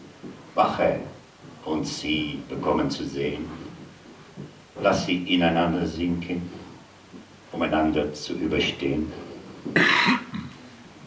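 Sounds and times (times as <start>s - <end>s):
man coughing: 9.7s - 10.6s.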